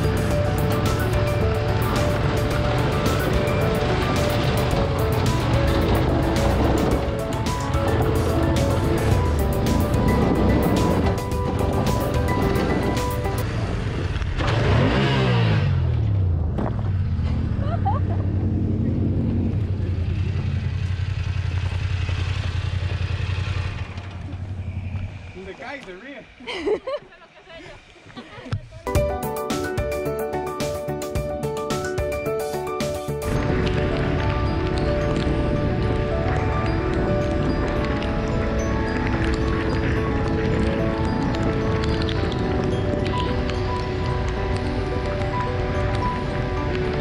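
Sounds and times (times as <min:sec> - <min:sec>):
background music: 0:00.0 - 0:13.5, 0:28.8 - 0:47.0
stones crackling under tyres: 0:00.0 - 0:14.6, 0:32.8 - 0:47.0
motorcycle engine running: 0:00.0 - 0:26.4.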